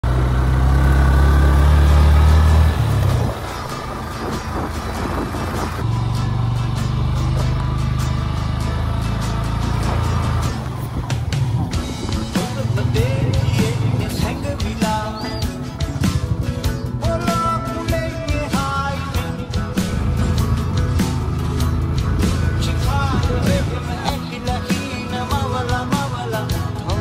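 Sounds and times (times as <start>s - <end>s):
motorcycle engine rumbling: 0.0s - 27.0s
background music: 0.1s - 27.0s.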